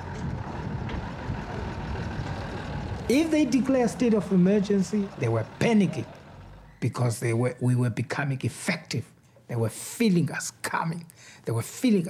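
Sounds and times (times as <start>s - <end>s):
diesel engine rumbling: 0.0s - 7.4s.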